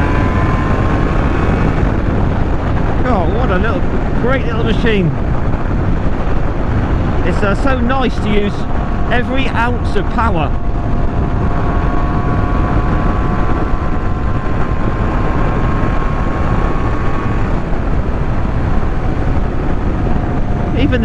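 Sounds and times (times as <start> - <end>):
two-stroke motorcycle engine cruising: 0.0 - 21.0
wind rush on microphone: 0.0 - 21.0.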